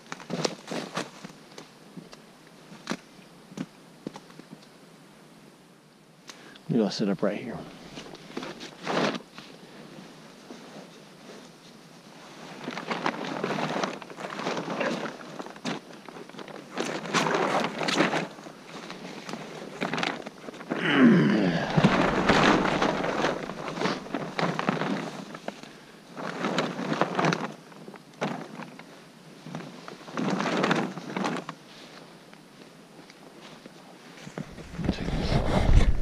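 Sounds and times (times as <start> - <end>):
dry leaves crunching and rustling: 12.4 - 27.6
bump and scrape against camera: 21.4 - 25.4, 34.2 - 36.0.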